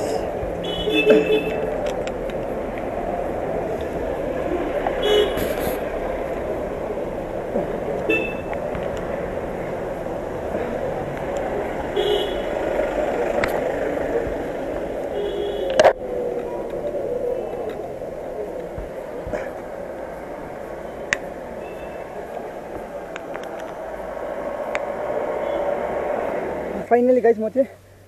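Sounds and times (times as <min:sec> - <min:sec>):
street traffic: 0:00.0 - 0:28.0.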